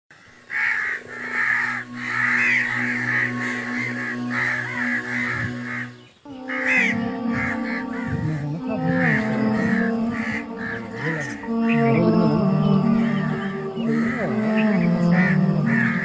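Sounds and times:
birds calling: 0.2 - 16.0
music with held notes: 0.5 - 16.0.

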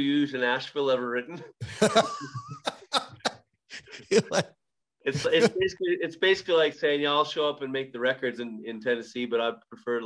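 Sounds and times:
men laughing: 1.6 - 4.5, 5.1 - 5.6.

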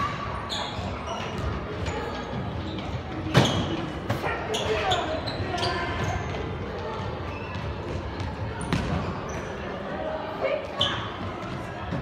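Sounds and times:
voices in a hall: 0.0 - 12.0.

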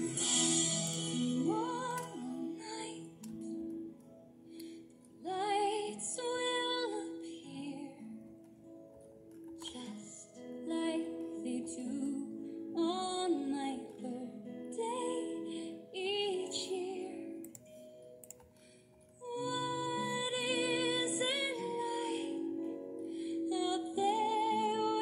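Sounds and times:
strummed acoustic guitar: 0.0 - 2.2
woman singing pop melody: 0.0 - 3.7, 5.2 - 8.2, 9.6 - 17.5, 19.2 - 25.0.

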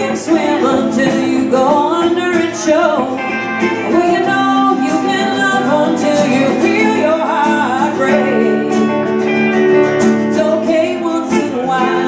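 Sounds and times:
acoustic guitars: 0.0 - 12.0
woman singing: 0.0 - 12.0.

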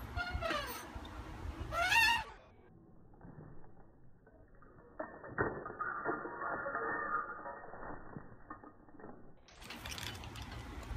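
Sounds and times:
steady outdoor hiss: 0.0 - 2.7
faint clicks and rattles: 7.5 - 10.9.

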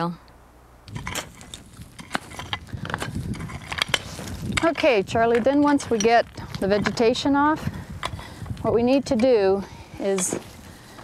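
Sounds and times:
hand tools chopping soil: 0.9 - 7.3.

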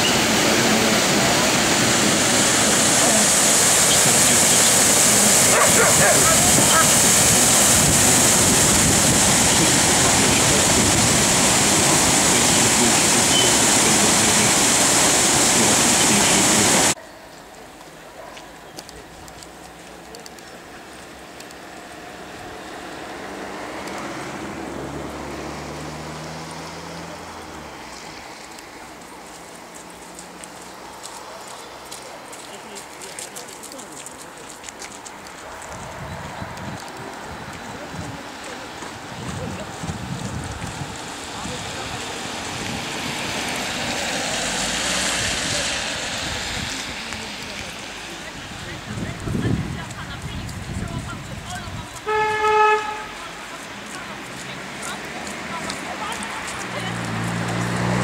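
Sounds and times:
water rushing over a weir: 0.0 - 17.0, 19.3 - 58.0.

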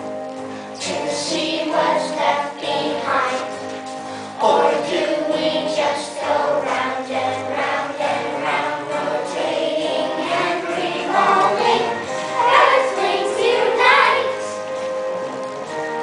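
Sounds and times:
children's choir singing: 0.7 - 15.4.

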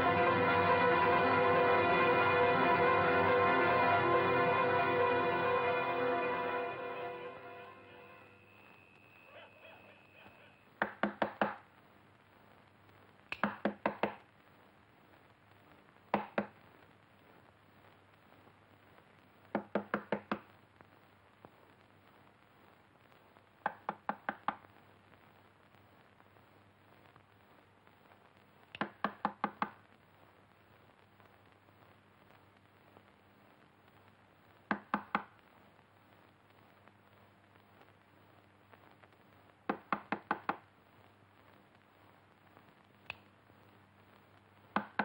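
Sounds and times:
knocks on a door: 10.8 - 11.6, 13.4 - 14.2, 19.5 - 20.4, 28.8 - 29.8, 34.7 - 35.3, 39.7 - 40.6
knocks on wooden door: 34.7 - 35.3, 39.7 - 40.6.

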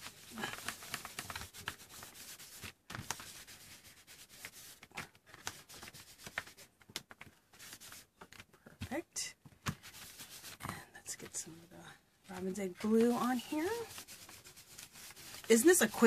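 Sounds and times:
wipe scuffing paint on paper: 0.0 - 6.7, 7.5 - 8.1, 9.7 - 10.6, 12.3 - 16.0.

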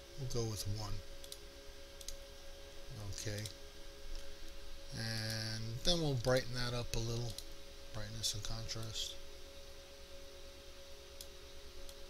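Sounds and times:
low electrical hum: 0.0 - 12.0
computer mouse clicks: 1.2 - 1.4, 2.0 - 2.2, 3.3 - 3.6, 7.2 - 7.5, 11.2 - 12.0.

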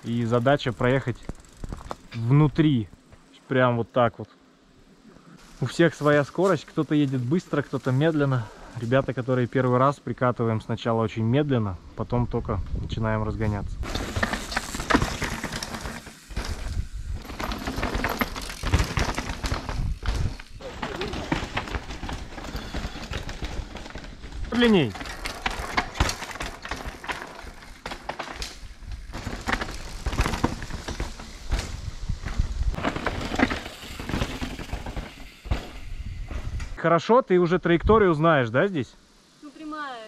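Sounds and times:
bike tyres clattering on rock: 0.1 - 2.4, 13.8 - 36.8
bike knocking and rattling: 0.1 - 3.2, 13.8 - 36.8.

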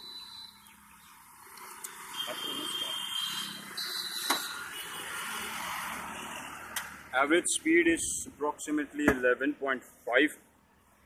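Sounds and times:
roadside traffic hiss: 0.0 - 11.0.

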